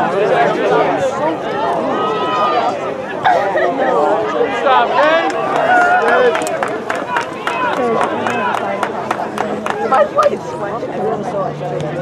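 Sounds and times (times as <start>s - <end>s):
background crowd noise: 0.0s - 12.0s
spectators talking: 0.0s - 12.0s.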